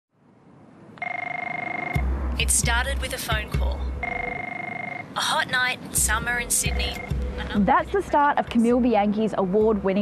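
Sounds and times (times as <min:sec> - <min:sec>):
telephone ringing: 0:01.0 - 0:02.0, 0:04.0 - 0:05.1, 0:06.6 - 0:07.2.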